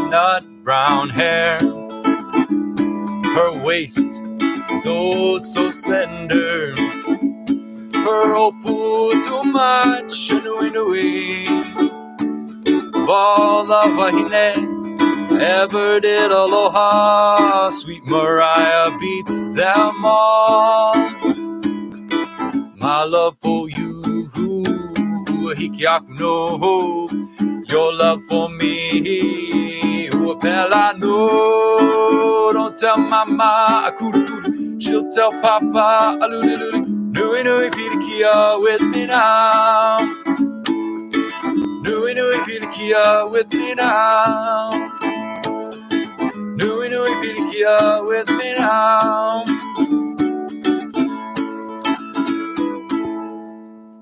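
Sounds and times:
man singing: 0.0 - 1.8, 3.2 - 7.1, 7.9 - 11.9, 13.0 - 21.4, 22.8 - 40.4, 41.8 - 49.9
ukulele strumming: 0.0 - 54.0.

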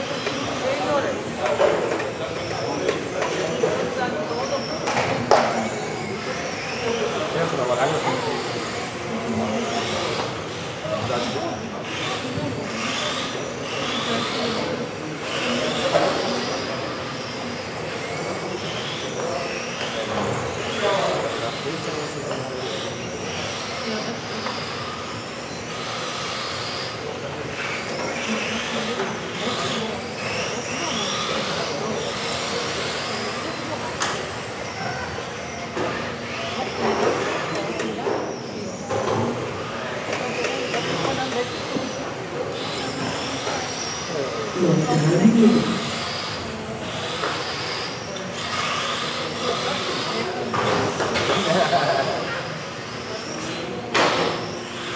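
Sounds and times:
radio-controlled car motors whining: 0.0 - 54.9.

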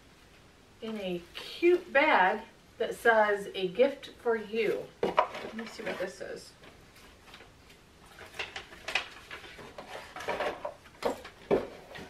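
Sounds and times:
paper and cardboard rustling: 4.7 - 12.0.

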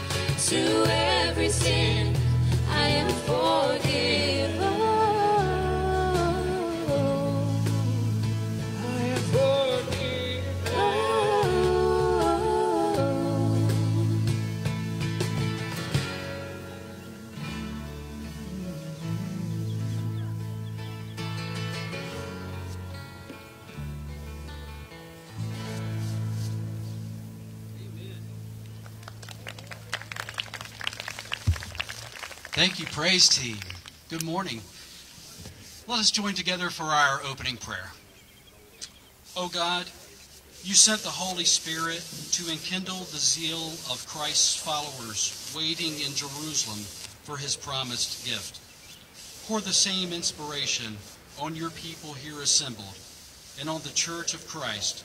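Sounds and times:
strummed acoustic guitars: 0.0 - 28.5
bass line: 0.0 - 29.5
crowd clapping: 28.6 - 34.3.

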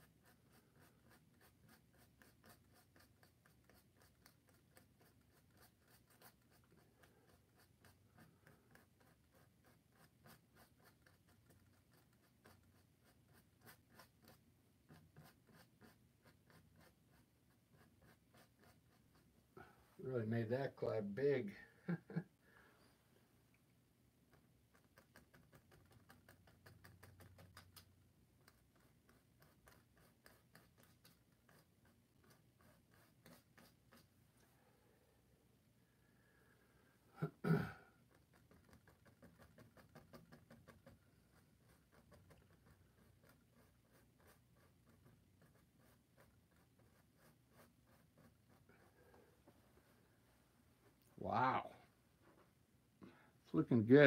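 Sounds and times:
paintbrush stroking canvas: 0.0 - 21.5, 24.2 - 34.6, 38.0 - 52.5.

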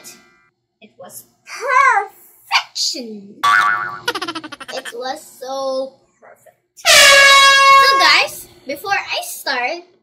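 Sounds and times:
air horn blast: 6.9 - 8.0.

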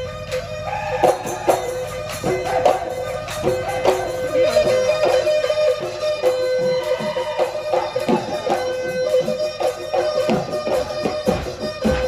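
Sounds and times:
drum strokes: 0.0 - 12.0
reedy wind pipe melody: 0.0 - 12.0.

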